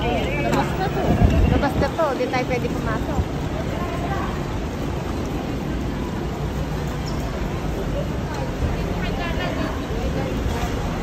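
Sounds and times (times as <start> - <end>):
crowd murmur: 0.0 - 11.0
low traffic rumble: 0.0 - 11.0.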